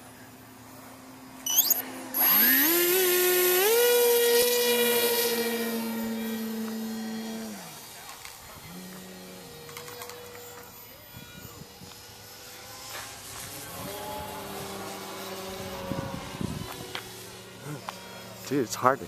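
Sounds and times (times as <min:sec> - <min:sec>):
electric motor propeller whine: 0:00.0 - 0:19.0.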